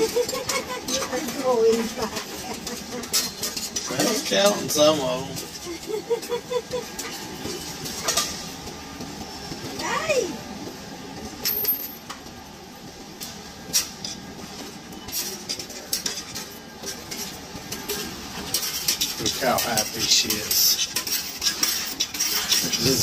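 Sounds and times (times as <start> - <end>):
coins clinking into machine: 11.4 - 12.1.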